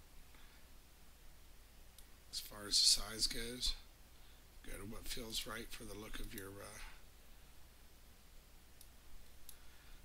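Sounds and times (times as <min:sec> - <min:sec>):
computer mouse clicks: 0:06.2 - 0:06.5, 0:08.8 - 0:09.7.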